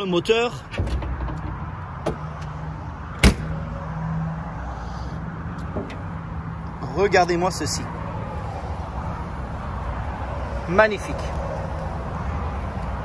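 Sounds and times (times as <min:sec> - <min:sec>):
car latch clunk: 0:00.7 - 0:02.6, 0:03.2 - 0:03.6, 0:05.6 - 0:06.1.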